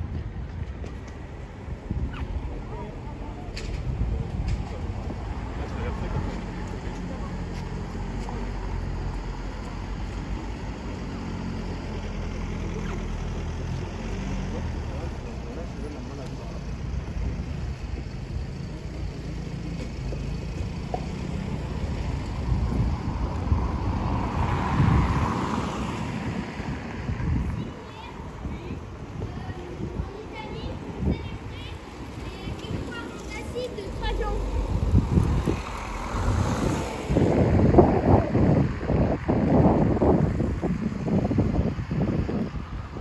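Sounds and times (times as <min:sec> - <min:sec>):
traffic rumble: 0:00.0 - 0:43.0.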